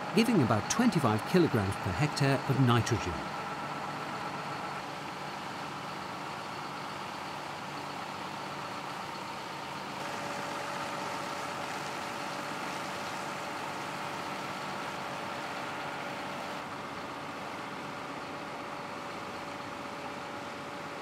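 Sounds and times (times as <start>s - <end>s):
tractor engine running: 0.0s - 21.0s.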